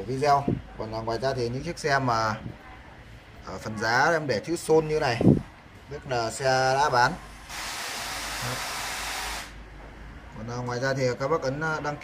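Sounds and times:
steady hiss: 7.2 - 9.6.

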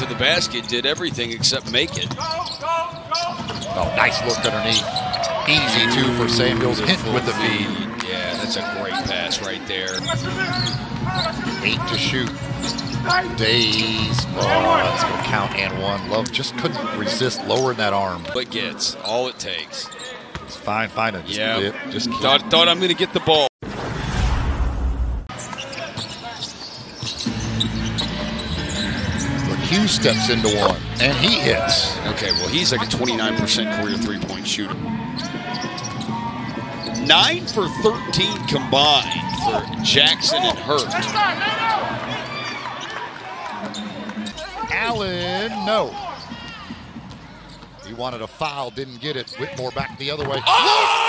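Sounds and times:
low arena noise: 0.0 - 51.0
sneaker squeaks on hardwood: 0.4 - 5.8, 8.3 - 14.4, 25.4 - 29.5, 35.0 - 37.6, 46.0 - 47.9
arena music with low bass: 5.6 - 8.0
low boom with rushing noise: 23.6 - 25.3.

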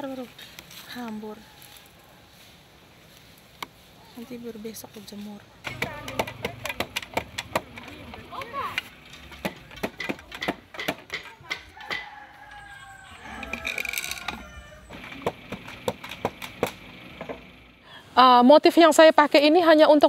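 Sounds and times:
wooden loom knocking and clacking: 5.6 - 12.1, 13.4 - 17.5.

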